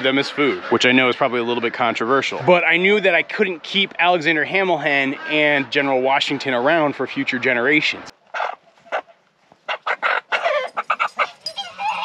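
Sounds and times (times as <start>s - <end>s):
chickens clucking and squawking: 0.0s - 3.6s, 4.4s - 12.0s.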